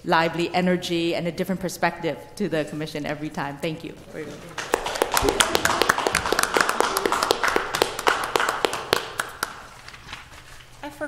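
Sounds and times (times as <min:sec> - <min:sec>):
small group clapping: 0:04.4 - 0:10.0.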